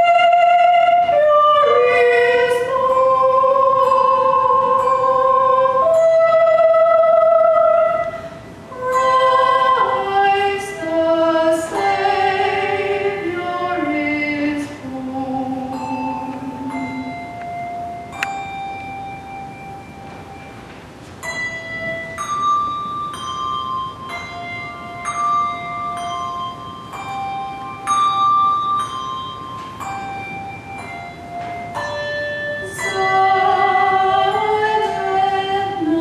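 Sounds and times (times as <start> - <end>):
handbells ringing a melody: 0.9 - 6.7, 7.8 - 36.0.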